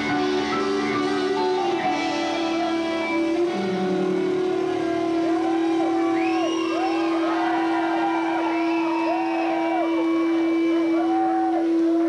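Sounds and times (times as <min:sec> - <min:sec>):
rock band droning instrumental: 0:00.0 - 0:12.0
swooping gliding notes: 0:00.0 - 0:12.0.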